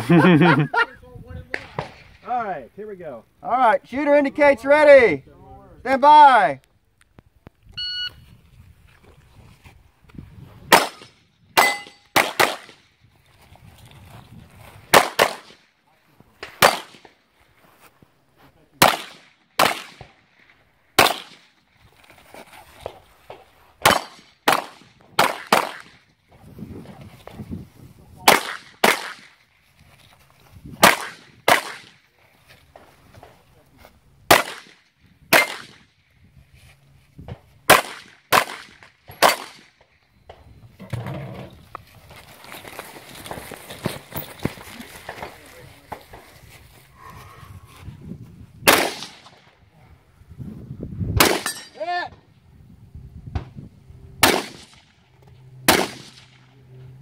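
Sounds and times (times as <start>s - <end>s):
handgun shots: 10.7s - 12.8s, 21.0s - 21.4s, 34.3s - 35.8s, 37.7s - 39.6s, 48.7s - 49.3s, 54.2s - 54.8s, 55.7s - 56.3s.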